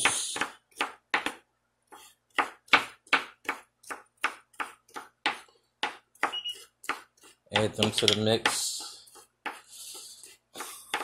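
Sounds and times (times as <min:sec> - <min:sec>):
knife chopping on wooden board: 0:00.0 - 0:11.0.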